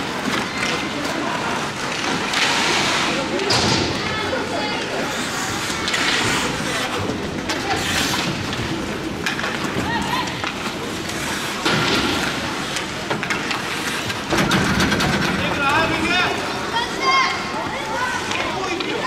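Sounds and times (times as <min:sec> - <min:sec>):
skates scraping on ice: 0:00.0 - 0:14.3
hockey sticks and puck clacking: 0:00.0 - 0:19.0.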